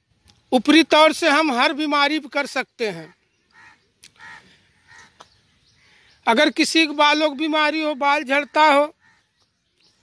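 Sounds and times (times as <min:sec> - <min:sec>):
faint bird calls: 0:03.1 - 0:07.0, 0:08.3 - 0:10.0.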